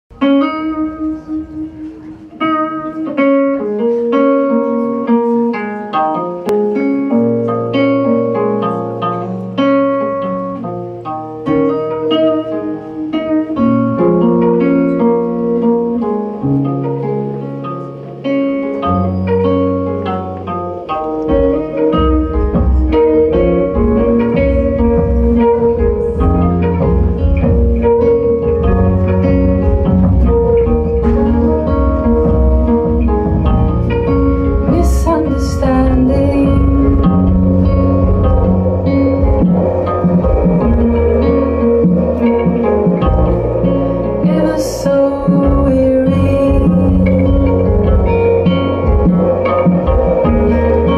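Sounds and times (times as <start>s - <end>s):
electric guitar picking notes: 0.1s - 50.9s
rock band playing: 0.1s - 50.9s.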